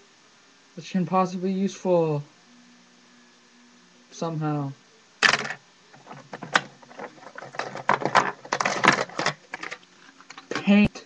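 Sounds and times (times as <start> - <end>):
small tools rummaged by hand: 5.2 - 10.8.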